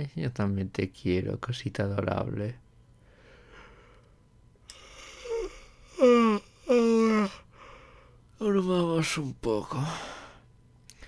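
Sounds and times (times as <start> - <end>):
man's soft hum or breath: 2.9 - 8.2.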